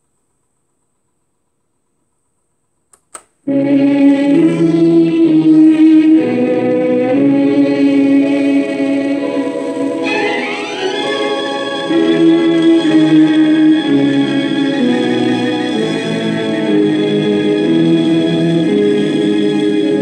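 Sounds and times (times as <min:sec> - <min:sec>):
old film song on record: 0:03.0 - 0:20.0.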